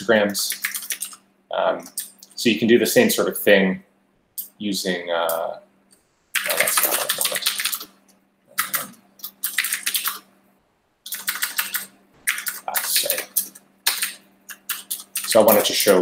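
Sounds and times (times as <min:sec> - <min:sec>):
computer keyboard typing: 0:00.3 - 0:01.2, 0:06.4 - 0:10.3, 0:11.0 - 0:16.0.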